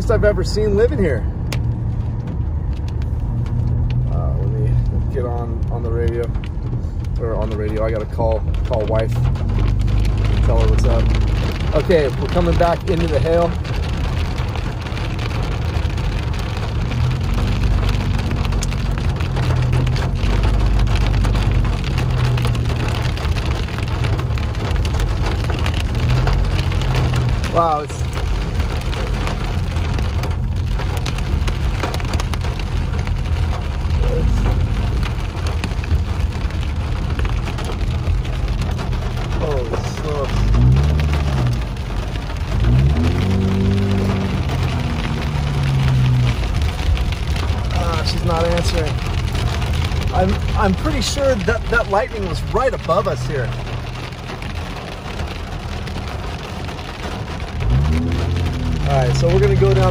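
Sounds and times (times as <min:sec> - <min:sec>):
car driving rumble: 0:00.0 - 0:59.9
rain and hail pelting car: 0:00.0 - 0:59.9.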